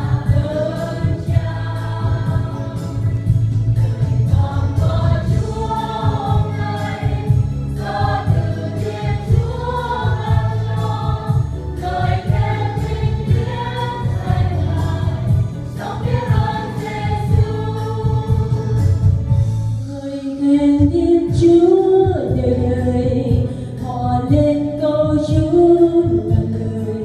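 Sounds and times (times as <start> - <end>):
instrumental accompaniment with beat: 0.0 - 19.9
choir singing a hymn: 0.0 - 20.6.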